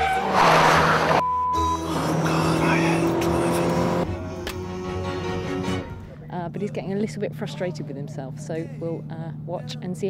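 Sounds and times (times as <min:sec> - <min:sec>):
background music: 0:01.2 - 0:08.4
car engine at steady revs: 0:01.9 - 0:04.8.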